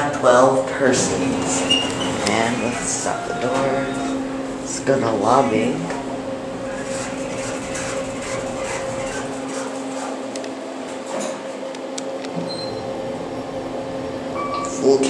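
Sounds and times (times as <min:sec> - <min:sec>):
elevator ride hum: 0:00.0 - 0:15.0.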